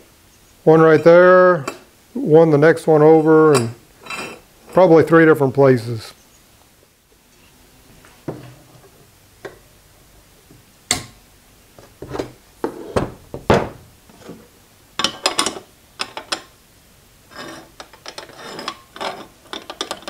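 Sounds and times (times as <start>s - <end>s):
metal clamps clicking and clattering: 17.8s - 20.0s.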